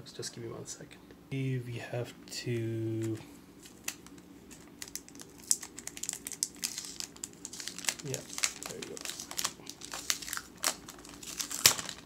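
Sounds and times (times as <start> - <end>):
plastic wrap crinkling: 3.6 - 12.0.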